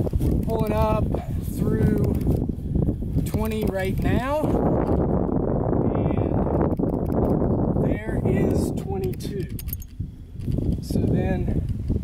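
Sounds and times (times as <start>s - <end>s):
wind rumbling on microphone: 0.0s - 12.0s
light clicks: 1.8s - 2.5s, 8.4s - 11.8s.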